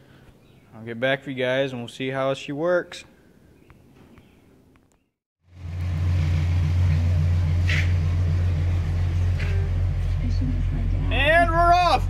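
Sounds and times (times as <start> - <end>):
car engine drone from cabin: 5.5 - 12.0.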